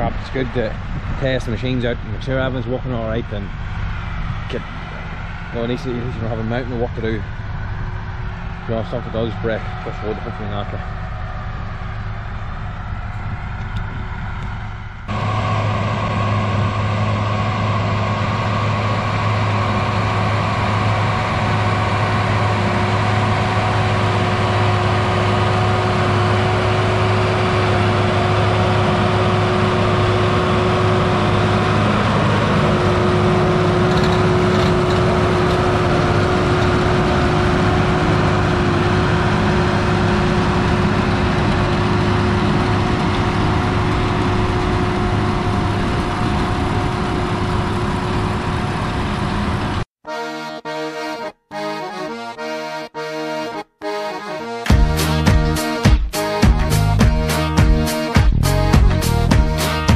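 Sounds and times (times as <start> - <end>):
constant machine whine: 0.0 - 49.9
tractor diesel engine running: 0.0 - 49.9, 54.5 - 59.9.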